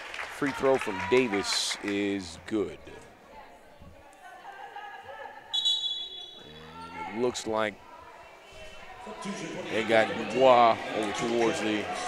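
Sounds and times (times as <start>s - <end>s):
referee's whistle blast: 5.5s - 6.5s
murmur of crowd: 6.4s - 12.0s.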